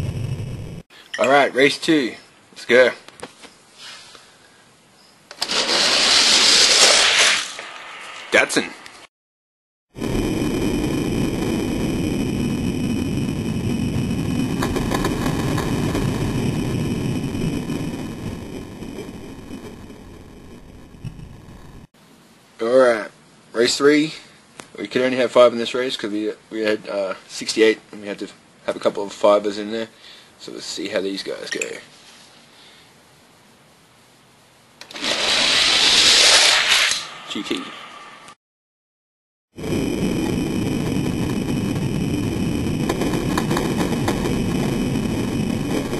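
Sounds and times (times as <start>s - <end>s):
toy cars rolling on plastic track: 5.3s - 7.6s, 34.8s - 37.1s.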